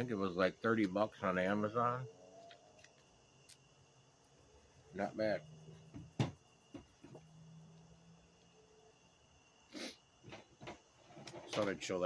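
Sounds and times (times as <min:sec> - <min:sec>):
faint insect chirring: 0:00.0 - 0:12.0.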